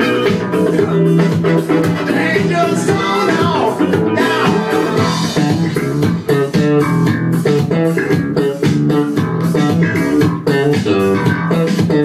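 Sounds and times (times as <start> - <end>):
dance music with guitar and bass: 0.0 - 12.0.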